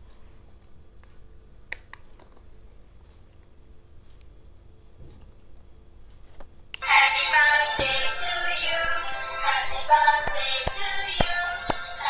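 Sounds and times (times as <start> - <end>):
tinny toy speaker song: 6.8 - 12.0.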